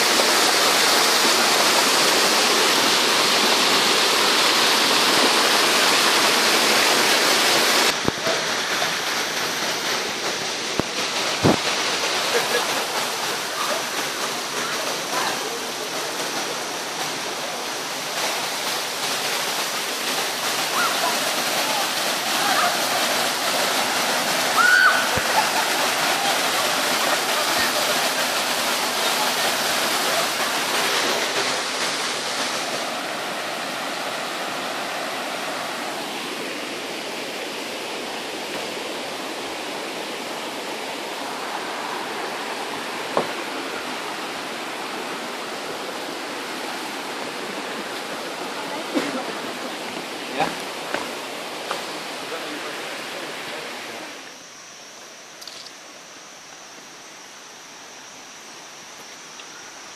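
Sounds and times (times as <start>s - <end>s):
water rushing over rocks: 0.0s - 59.9s.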